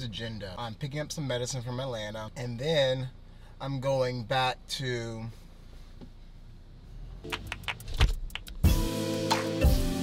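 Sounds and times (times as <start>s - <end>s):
sharp clicks and knocks: 7.3s - 8.6s
background music: 8.6s - 10.0s.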